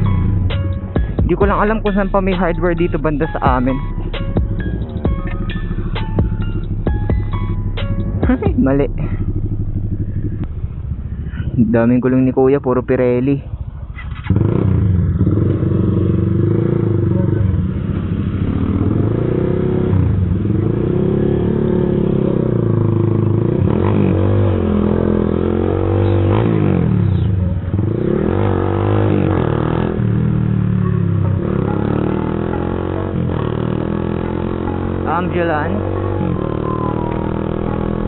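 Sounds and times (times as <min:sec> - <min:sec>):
motorcycle engine revving: 0:00.0 - 0:38.0.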